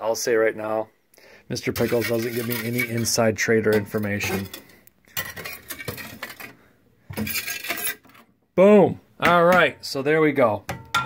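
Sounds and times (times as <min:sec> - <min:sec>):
scraper scraping on glass: 0:01.7 - 0:03.2, 0:07.2 - 0:08.2.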